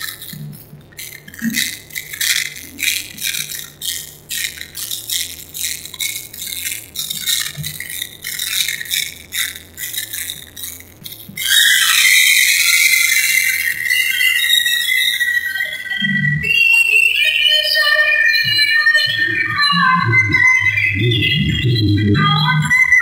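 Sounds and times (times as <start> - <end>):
music with rattling percussion: 0.0 - 15.5
high-pitched ringing: 1.3 - 23.0.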